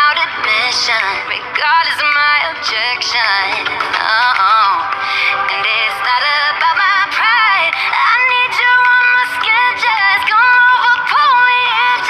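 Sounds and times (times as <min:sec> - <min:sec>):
pop song playing: 0:00.0 - 0:12.0.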